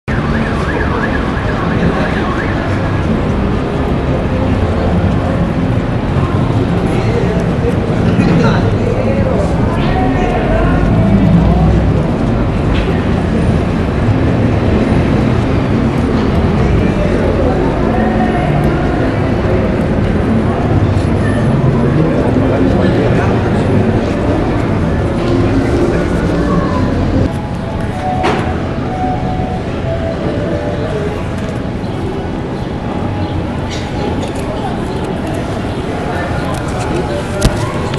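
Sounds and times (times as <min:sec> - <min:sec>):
crowd noise: 0:00.0 - 0:37.9
low rumble of vehicles: 0:00.1 - 0:37.9.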